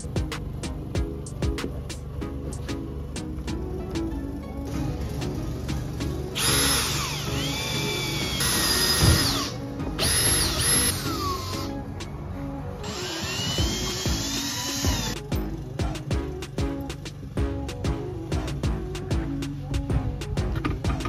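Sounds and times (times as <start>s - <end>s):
cordless drill whining: 6.3s - 11.8s, 12.8s - 15.2s.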